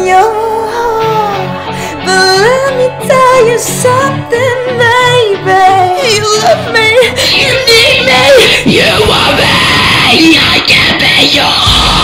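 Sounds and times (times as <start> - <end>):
loud metal backing track: 0.0 - 12.0
yelled vocals: 5.9 - 12.0.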